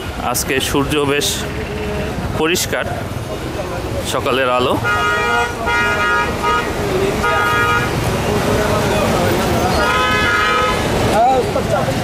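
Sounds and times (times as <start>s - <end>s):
busy street noise: 0.0s - 12.0s
people talking: 0.2s - 12.0s
motorcycle horns honking: 4.6s - 8.3s, 9.7s - 11.2s.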